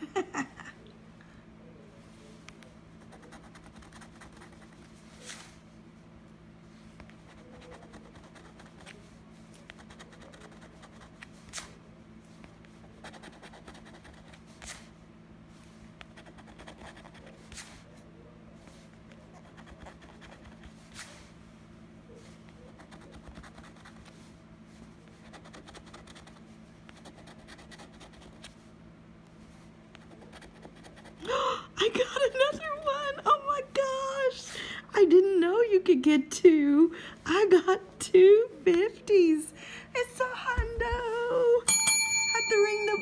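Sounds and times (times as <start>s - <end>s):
coin scratching paper ticket: 9.7s - 11.2s.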